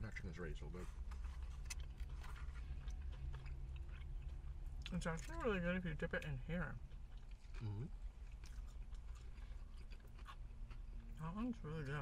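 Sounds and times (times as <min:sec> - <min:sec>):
low steady hum: 0:00.0 - 0:12.0
people chewing: 0:00.7 - 0:12.0.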